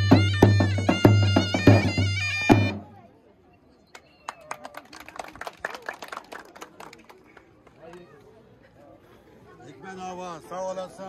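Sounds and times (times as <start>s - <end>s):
people clapping: 3.9s - 8.1s.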